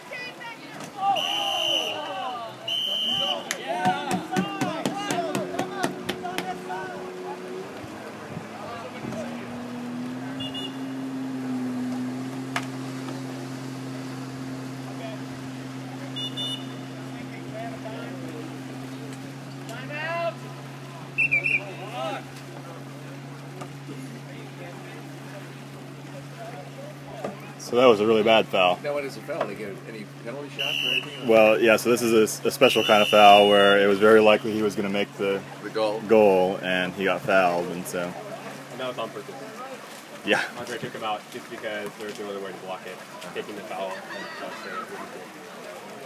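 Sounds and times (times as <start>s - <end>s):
players shouting: 0.0s - 11.5s, 14.4s - 23.8s, 30.5s - 31.6s, 32.4s - 34.4s, 43.8s - 45.4s
referee's whistle blasts: 1.1s - 3.6s, 10.4s - 10.9s, 16.1s - 16.9s, 21.2s - 21.8s, 30.6s - 31.3s, 32.7s - 33.8s.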